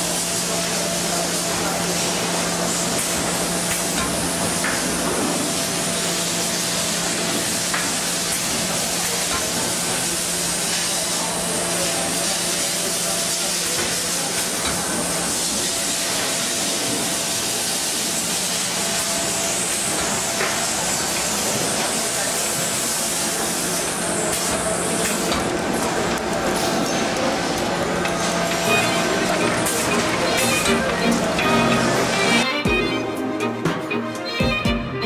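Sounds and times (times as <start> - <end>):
packaging machine hissing: 0.0 - 32.5
low machine hum: 25.3 - 35.0.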